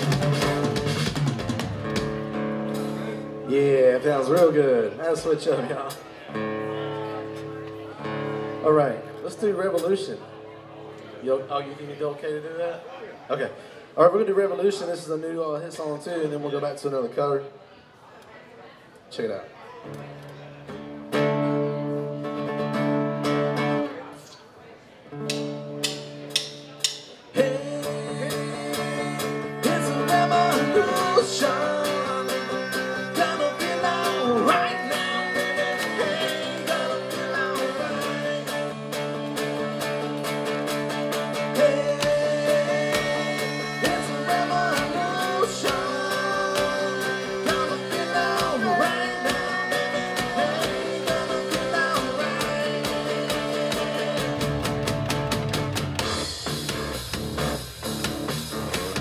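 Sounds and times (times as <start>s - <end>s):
drums: 0.0s - 4.7s, 25.2s - 59.0s
rock band playing with singing: 0.0s - 10.1s, 25.2s - 59.0s.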